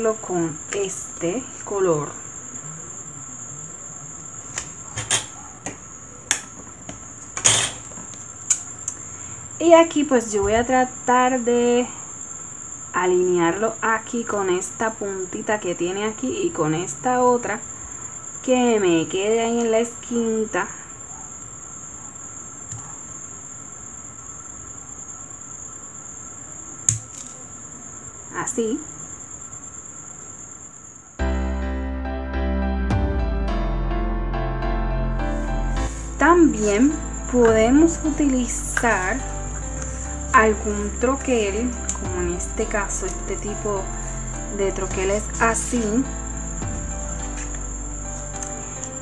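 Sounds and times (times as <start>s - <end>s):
faint steady high whine: 0.0s - 31.9s, 35.2s - 49.0s.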